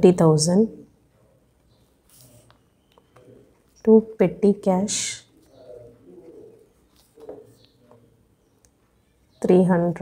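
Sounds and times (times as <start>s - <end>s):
bird cooing faintly: 5.2s - 8.6s.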